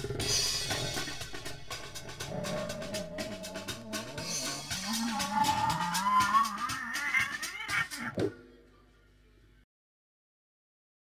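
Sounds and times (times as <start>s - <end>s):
shrill wailing screech: 2.4s - 7.8s.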